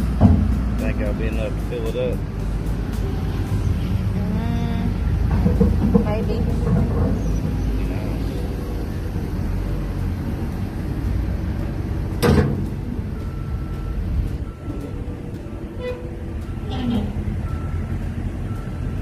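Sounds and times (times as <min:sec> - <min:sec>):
vehicle engine rumbling: 0:00.0 - 0:19.0.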